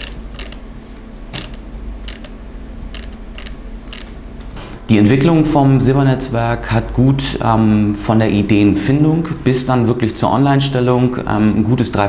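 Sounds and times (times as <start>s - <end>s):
mechanical clicks and creaks: 0.0s - 0.6s, 1.3s - 4.2s
steady low hum: 0.0s - 12.0s.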